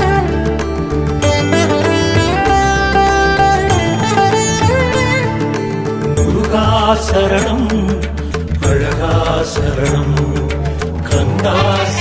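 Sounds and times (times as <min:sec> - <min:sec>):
percussion strokes: 0:00.0 - 0:12.0
sustained bass: 0:00.0 - 0:12.0
chanted vocal: 0:08.6 - 0:12.0.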